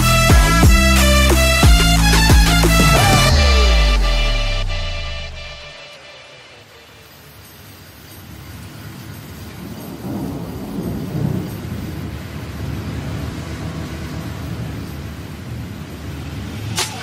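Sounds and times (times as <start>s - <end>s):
rain hissing: 0.0s - 17.0s
rumbling thunder: 9.4s - 16.6s.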